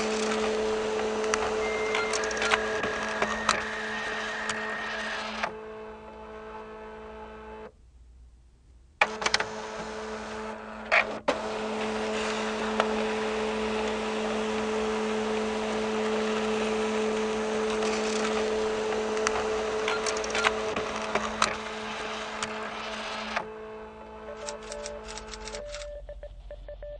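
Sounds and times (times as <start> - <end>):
mechanical hum: 0.0 - 26.9
sharp clicks: 24.4 - 25.9.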